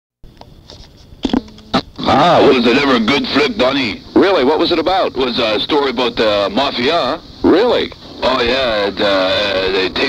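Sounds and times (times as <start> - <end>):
tape hiss: 0.2 - 10.0
voices: 1.9 - 10.0.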